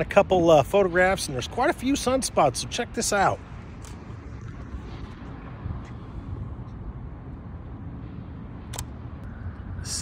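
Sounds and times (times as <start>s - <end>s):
city background rumble: 0.0s - 10.0s
sharp click: 8.7s - 9.0s.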